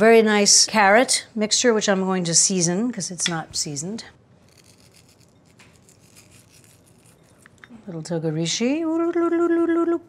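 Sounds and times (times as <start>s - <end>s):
fingers sprinkling seasoning: 4.5s - 7.4s.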